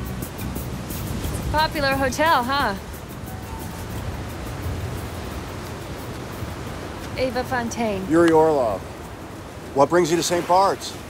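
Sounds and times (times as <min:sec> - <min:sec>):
faint background music: 0:00.0 - 0:09.0
ocean surf on a beach: 0:00.0 - 0:11.0.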